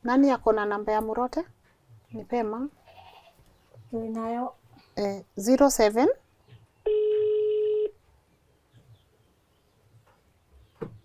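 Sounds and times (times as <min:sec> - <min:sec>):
phone ringback tone: 0:06.9 - 0:08.0.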